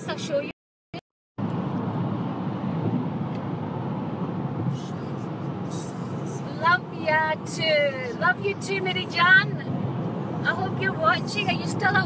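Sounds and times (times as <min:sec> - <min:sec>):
car road and engine noise: 0:00.0 - 0:00.5, 0:01.4 - 0:12.0
woman speaking: 0:00.0 - 0:00.5, 0:06.5 - 0:09.6, 0:10.4 - 0:12.0.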